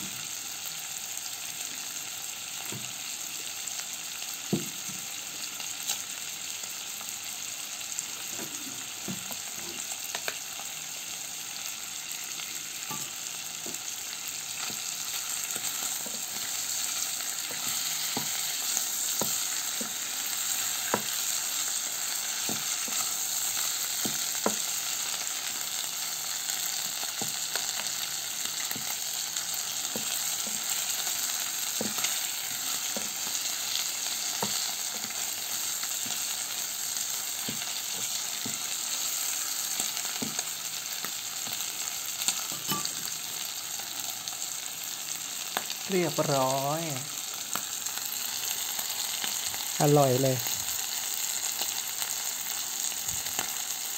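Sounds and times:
meat sizzling in oil: 0.0s - 53.9s
wooden spatula turning food: 12.8s - 41.6s.

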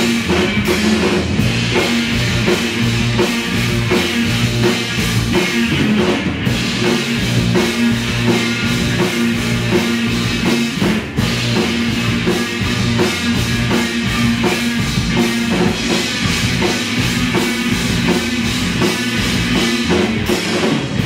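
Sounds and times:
drums keeping steady beat: 0.0s - 21.0s
live rock band playing: 0.0s - 21.0s.

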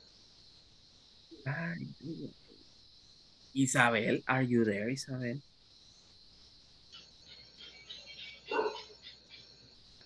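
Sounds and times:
faint high chirping: 0.0s - 10.0s
dog bark: 8.4s - 9.0s.

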